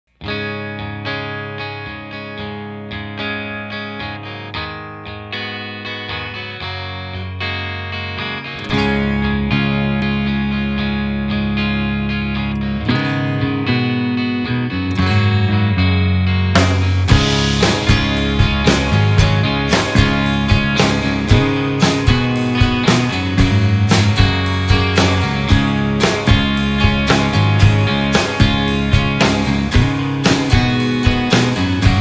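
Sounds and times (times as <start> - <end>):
electric guitar rock music: 0.1 - 32.0.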